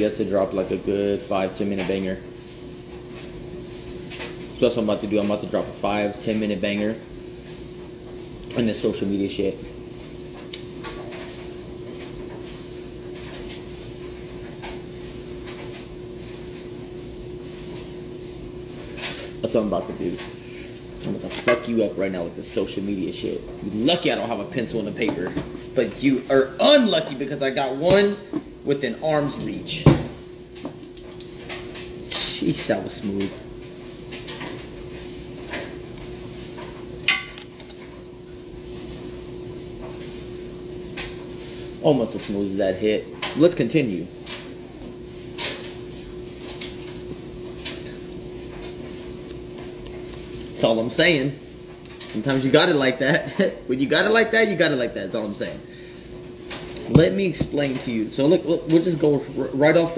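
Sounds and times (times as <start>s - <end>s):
low electrical hum: 0.0s - 59.9s.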